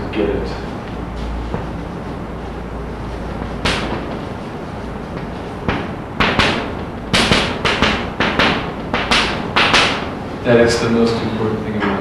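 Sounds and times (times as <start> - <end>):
chalk tapping on blackboard: 3.3 - 4.4, 5.1 - 10.1.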